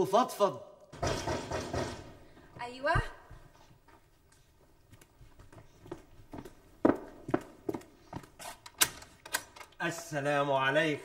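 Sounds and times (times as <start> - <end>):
footsteps on a hard floor: 2.4 - 8.6.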